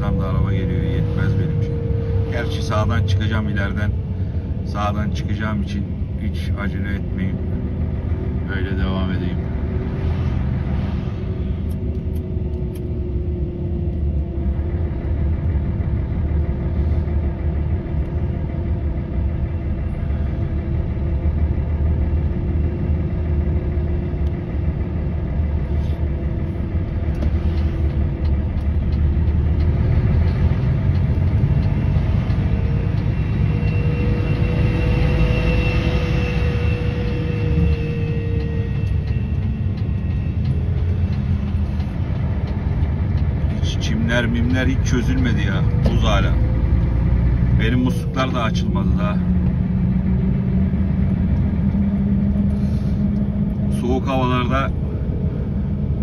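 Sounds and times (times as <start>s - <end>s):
diesel truck engine rumble: 0.0s - 56.0s
pitched whine: 0.0s - 56.0s.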